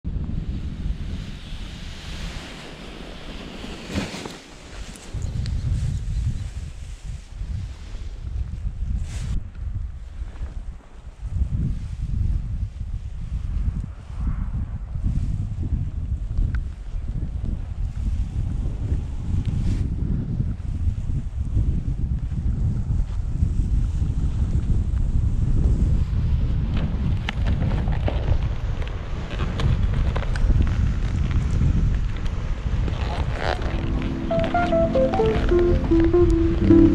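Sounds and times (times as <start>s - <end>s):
wind buffeting microphone: 0.0s - 3.9s, 4.8s - 34.1s.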